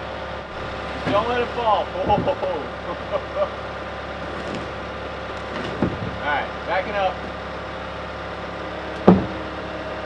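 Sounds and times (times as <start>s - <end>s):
loader engine running: 0.0s - 10.0s
load knocking wooden platform: 9.0s - 9.5s.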